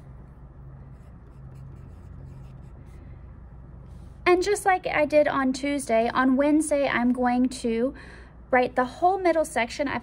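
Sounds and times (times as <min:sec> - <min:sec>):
pencil scratching on paper: 0:00.0 - 0:03.0
low steady hum: 0:00.0 - 0:10.0.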